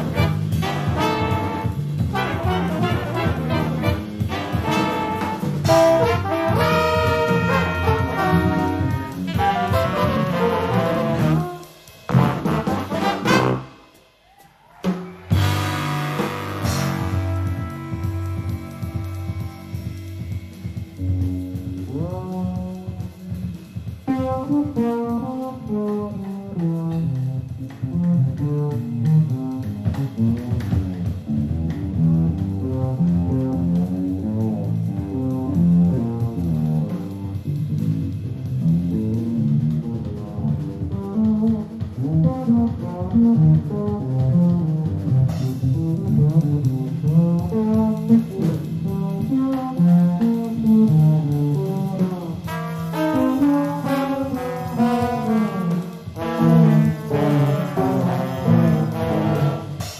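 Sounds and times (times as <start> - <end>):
big band jazz: 0.0 - 59.9.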